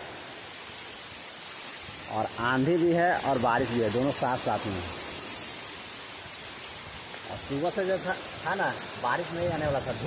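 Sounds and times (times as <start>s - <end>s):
heavy rain on ground and leaves: 0.0s - 10.0s.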